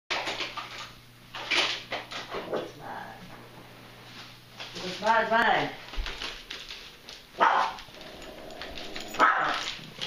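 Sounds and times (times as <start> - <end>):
dog barking: 7.4 - 7.9, 9.2 - 9.7.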